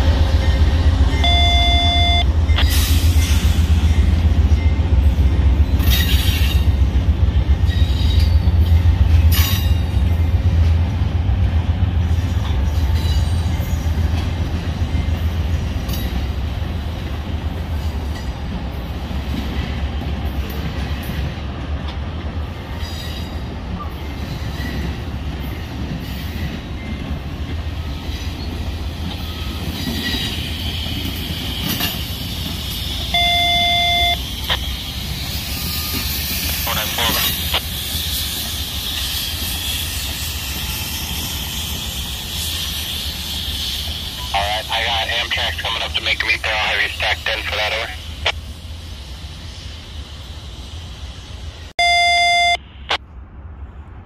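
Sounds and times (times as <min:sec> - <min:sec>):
train wheels rumbling on track: 0:00.0 - 0:51.8.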